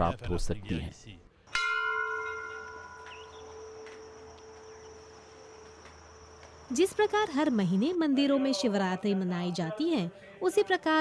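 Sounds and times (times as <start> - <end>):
metal bell ringing: 1.5 - 5.6.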